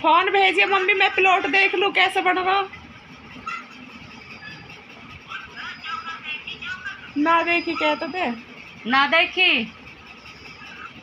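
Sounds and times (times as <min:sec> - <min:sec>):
faint indistinct voices: 0:00.0 - 0:11.0.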